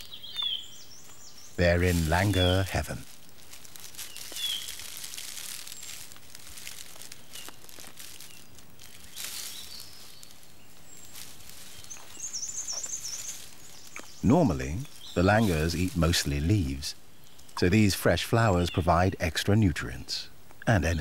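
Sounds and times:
high bird chirps: 0:00.0 - 0:02.7, 0:03.9 - 0:04.9, 0:07.1 - 0:19.2
warbling bird song: 0:00.0 - 0:06.2, 0:07.0 - 0:21.0
branches rustling: 0:00.0 - 0:21.0.

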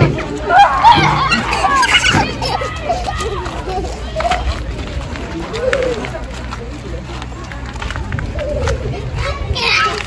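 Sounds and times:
background chatter: 0:00.0 - 0:10.0
people talking and calling: 0:00.0 - 0:10.0.

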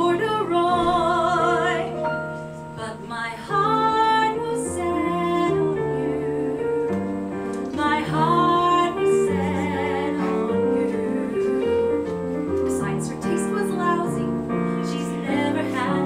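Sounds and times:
woman singing: 0:00.0 - 0:02.2, 0:02.8 - 0:07.0, 0:07.6 - 0:16.0
grand piano accompaniment: 0:00.0 - 0:16.0.

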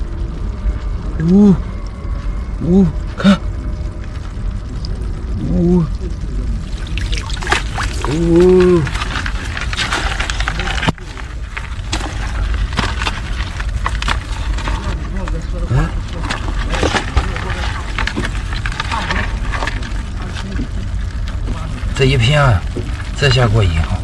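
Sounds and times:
seawater splashing and dripping: 0:06.6 - 0:09.1
crabs clicking in plastic bucket: 0:06.6 - 0:24.0.

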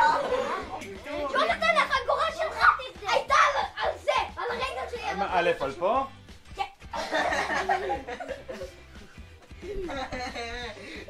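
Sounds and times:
children talking and calling out: 0:00.0 - 0:05.8.

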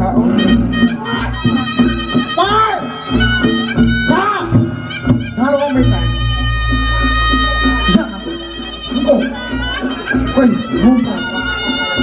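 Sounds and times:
drumming: 0:00.0 - 0:12.0
shawm playing reedy melody: 0:00.0 - 0:12.0.

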